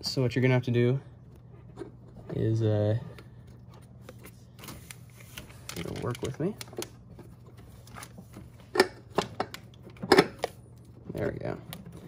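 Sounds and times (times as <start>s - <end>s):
clicks and knocks of hard parts: 8.7s - 12.0s.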